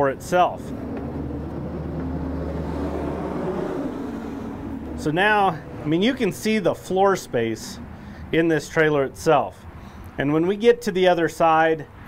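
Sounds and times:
low mechanical hum: 0.0s - 10.2s.

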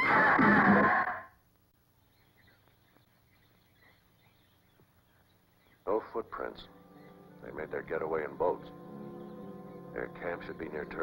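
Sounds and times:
soft bird chirps: 1.8s - 11.0s
music cue: 6.3s - 11.0s.

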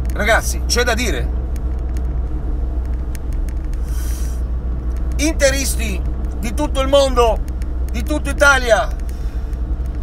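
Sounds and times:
car engine and road noise: 0.0s - 10.0s
short breathy hiss: 3.8s - 4.5s.

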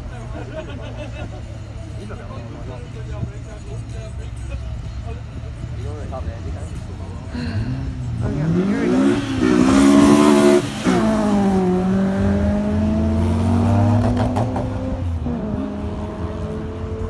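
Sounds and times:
race car engine accelerating: 7.4s - 17.0s.

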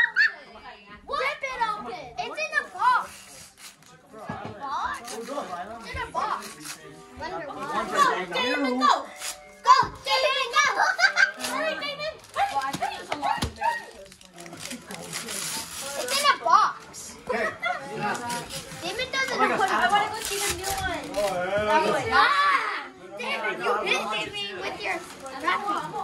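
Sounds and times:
children and adults talking: 0.0s - 26.0s
paper tearing: 2.5s - 4.0s, 4.9s - 6.9s, 9.1s - 10.3s, 11.2s - 16.8s, 17.9s - 21.4s.

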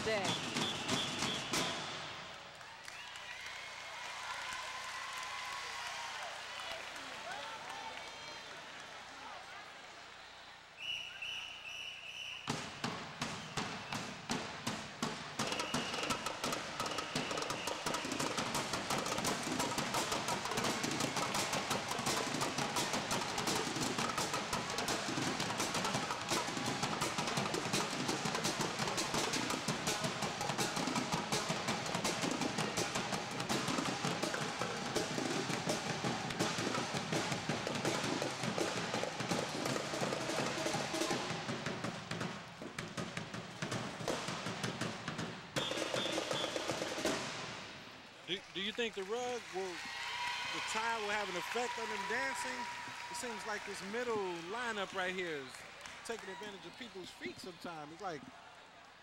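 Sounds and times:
snare and bass drum cadence: 0.0s - 2.2s, 12.4s - 47.7s.

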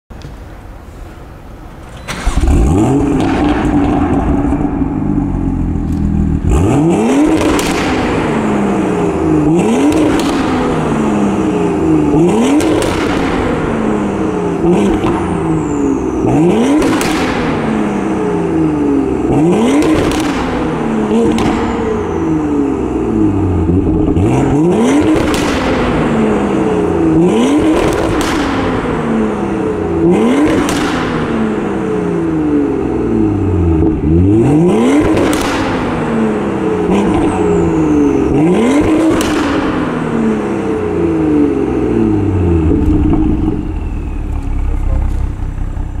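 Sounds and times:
exhaust pops: 1.8s - 6.6s, 7.2s - 8.4s, 9.8s - 10.9s, 12.4s - 13.7s, 16.8s - 17.6s, 19.7s - 21.9s, 25.0s - 26.2s, 27.6s - 29.0s, 30.0s - 31.4s, 35.0s - 36.0s, 38.8s - 40.0s, 42.6s - 46.0s
car engine revving: 2.1s - 46.0s.

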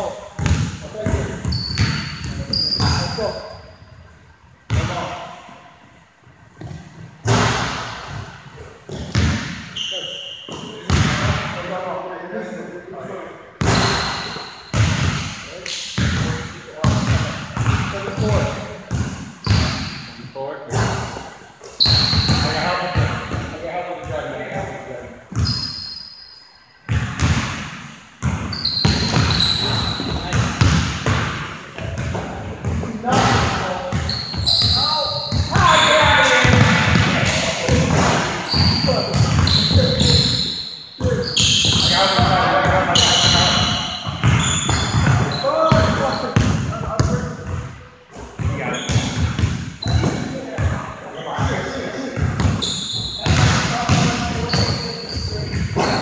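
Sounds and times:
players' voices: 0.0s - 5.8s, 6.6s - 25.7s, 28.8s - 56.0s
basketball bouncing on hardwood floor: 0.4s - 3.0s, 28.2s - 34.4s, 44.0s - 47.6s, 53.2s - 54.7s
shoes squeaking: 0.9s - 4.2s, 8.6s - 10.9s, 13.6s - 14.8s, 21.6s - 23.1s, 25.3s - 26.5s, 28.4s - 30.6s, 33.8s - 36.6s, 37.6s - 46.4s, 48.1s - 50.5s, 52.4s - 56.0s.

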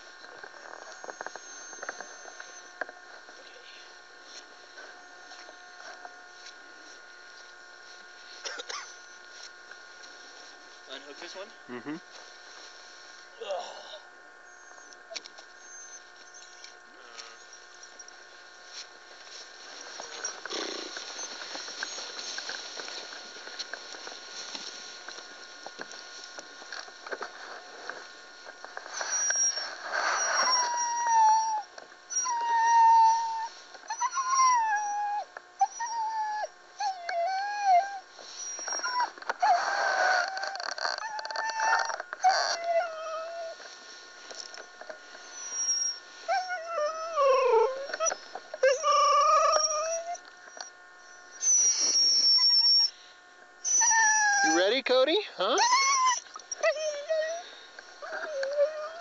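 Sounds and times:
sled dogs howling and whining: 28.8s - 43.7s, 45.3s - 52.9s, 53.6s - 54.6s, 55.6s - 59.0s.

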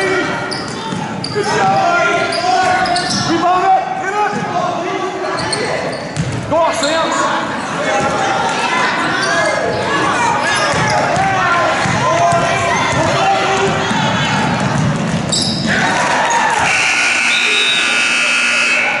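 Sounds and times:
voices of players and spectators: 0.0s - 19.0s
ball thuds and shoe squeaks: 5.4s - 6.4s, 15.3s - 15.6s
steady electronic buzzer: 16.7s - 19.0s.

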